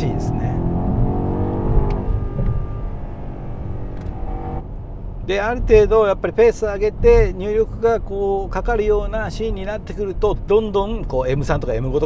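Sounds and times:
tyre and road rumble: 0.0s - 5.9s
car engine cruising: 0.0s - 11.1s.

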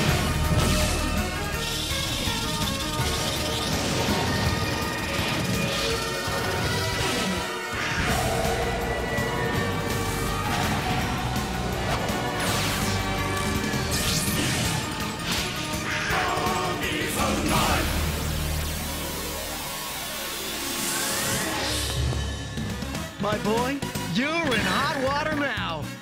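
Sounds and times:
cartoon soundtrack music: 0.0s - 26.0s.

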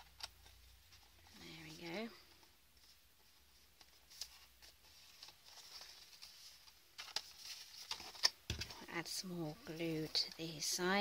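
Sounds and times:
paper rustling: 0.0s - 9.0s.

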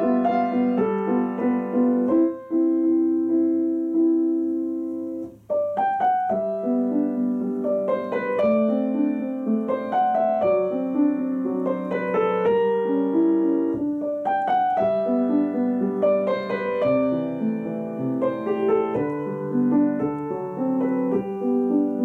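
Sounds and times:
grand piano playing: 0.0s - 22.0s.

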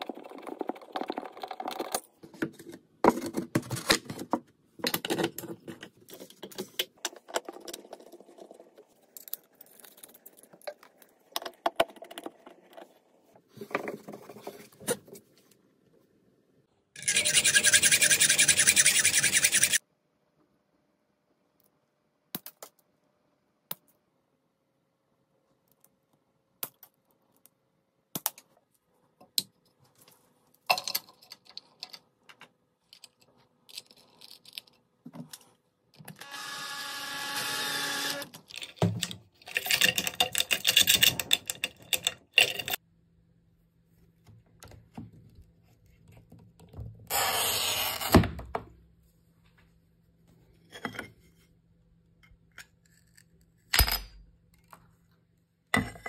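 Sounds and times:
hacksaw cutting steel: 17.0s - 19.8s.

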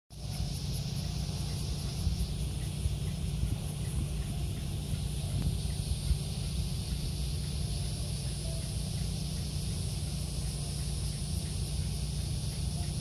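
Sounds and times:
insects chirping: 0.1s - 13.0s
low rumble: 0.2s - 13.0s.

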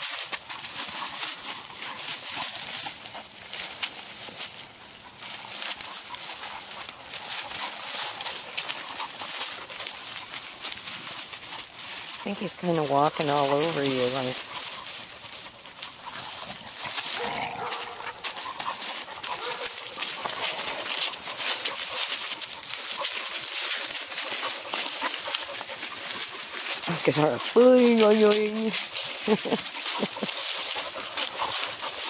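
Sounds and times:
leaves rustling and crunching: 0.0s - 32.0s
puppy vocal sound: 13.5s - 32.0s.

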